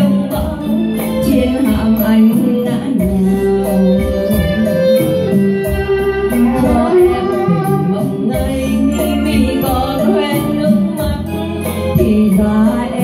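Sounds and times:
electronic keyboard accompaniment: 0.0s - 13.0s
woman singing into microphone: 0.0s - 13.0s.

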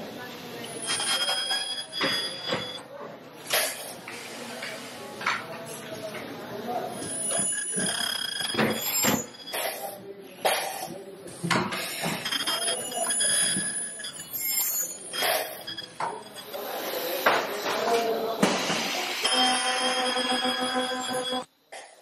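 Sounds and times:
indistinct voices: 0.0s - 21.5s
short high beeps: 0.6s - 2.8s, 11.9s - 16.6s, 19.2s - 21.5s.

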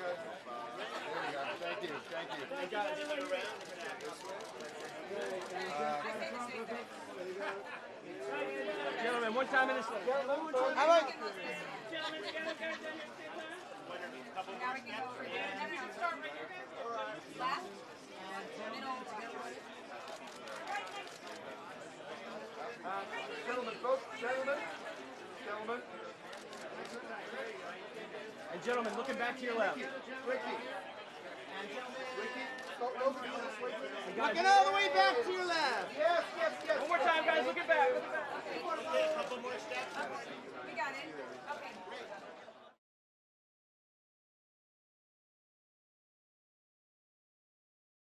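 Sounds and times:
photographers chattering and calling out: 0.0s - 42.6s.

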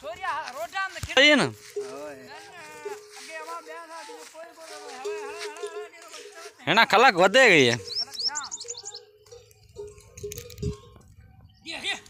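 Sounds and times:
small bird chirping: 7.6s - 12.0s.

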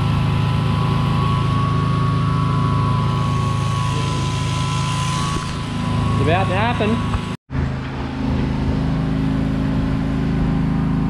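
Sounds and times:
high whine: 0.0s - 11.0s
shearing machine hum: 0.0s - 11.0s.

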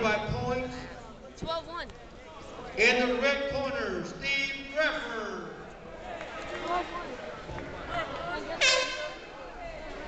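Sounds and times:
crowd chatter: 0.0s - 10.0s
loud horn blast: 8.6s - 9.2s.

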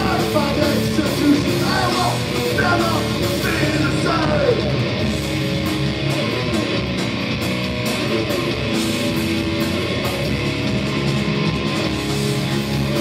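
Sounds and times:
bass guitar: 0.0s - 13.0s
distorted electric guitar riffing: 0.0s - 13.0s
drums and cymbals: 0.0s - 13.0s.

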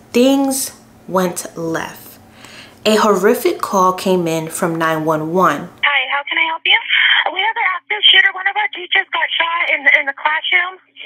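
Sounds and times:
voices over telephone line: 4.7s - 10.9s.

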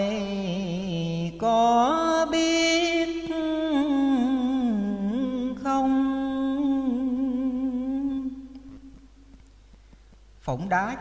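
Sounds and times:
man chanting verse: 10.4s - 11.0s.

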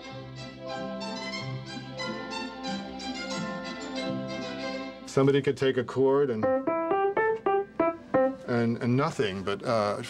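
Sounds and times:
orchestral strings holding notes: 0.0s - 10.0s.

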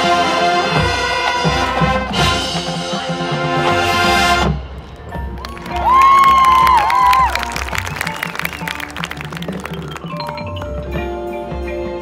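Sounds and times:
marching band playing: 0.0s - 12.0s
percussion hits: 0.0s - 12.0s.

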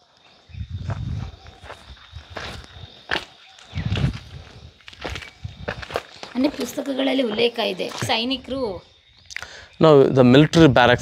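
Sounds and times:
footsteps on gravel: 0.8s - 8.6s.

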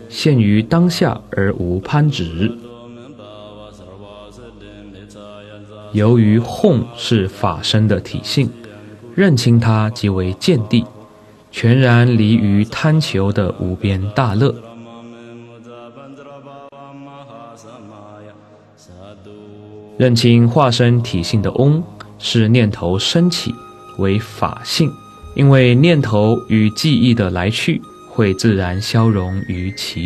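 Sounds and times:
slowly chanted mantra music: 0.0s - 30.0s.

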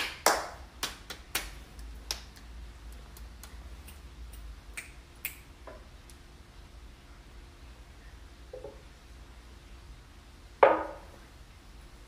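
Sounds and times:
hand snaps and claps: 0.0s - 6.2s.

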